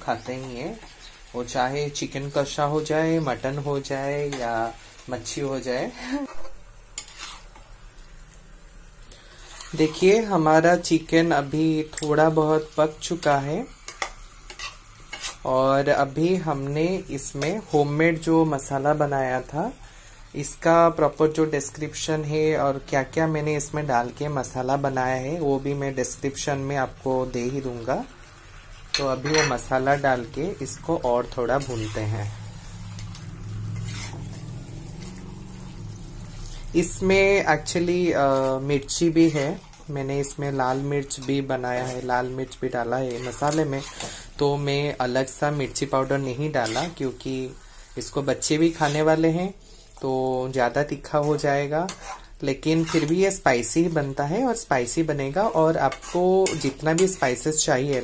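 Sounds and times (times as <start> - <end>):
food sizzling in a pan: 0.0 - 58.0
spatula scraping a pan: 2.2 - 7.9, 9.2 - 18.4, 28.9 - 58.0.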